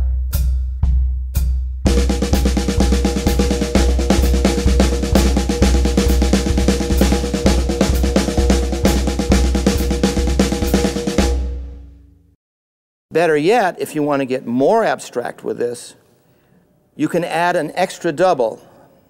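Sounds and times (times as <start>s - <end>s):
snare and toms played with sticks: 0.0s - 11.8s
bass drum pulse: 0.0s - 12.1s
drums ringing out: 0.0s - 12.2s.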